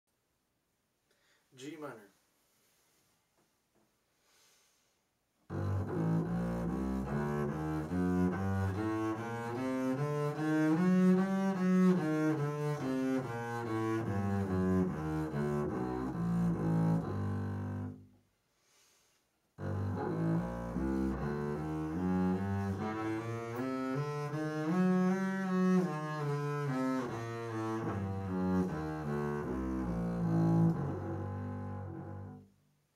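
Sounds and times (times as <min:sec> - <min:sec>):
bowed double bass scale: 0:05.5 - 0:18.2, 0:19.6 - 0:32.6.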